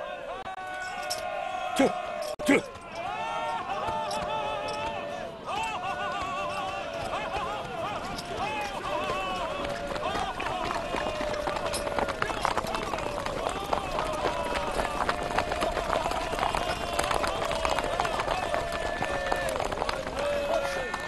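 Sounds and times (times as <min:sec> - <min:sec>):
riders shouting together: 0:00.0 - 0:21.0
horses galloping over grass: 0:02.7 - 0:21.0.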